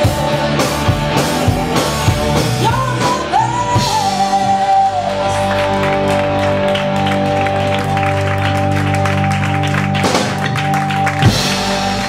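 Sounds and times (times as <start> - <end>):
rock band sustained chord: 0.0 - 12.0.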